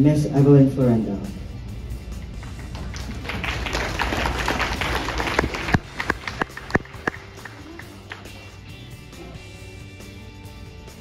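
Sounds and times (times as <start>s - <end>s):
background music: 0.0s - 11.0s
audience applause: 2.3s - 8.7s.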